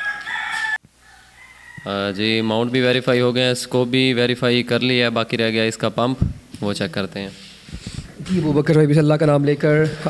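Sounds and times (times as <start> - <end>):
rooster crowing: 0.0 - 2.6.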